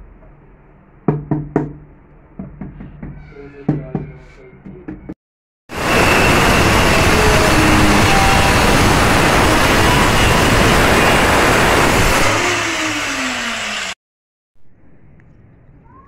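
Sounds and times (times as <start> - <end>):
angle grinder grinding metal: 5.8 - 14.0
motor winding down: 5.8 - 14.0.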